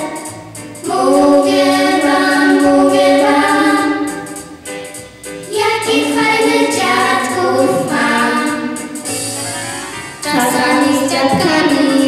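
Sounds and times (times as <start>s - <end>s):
children singing: 0.0s - 4.4s, 5.5s - 9.0s, 10.2s - 12.0s.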